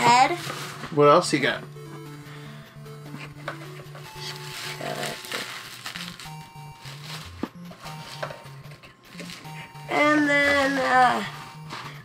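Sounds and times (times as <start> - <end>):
quiet background music: 0.0 - 12.0
plastic bag crinkling: 0.1 - 1.0, 4.0 - 8.3, 9.0 - 12.0.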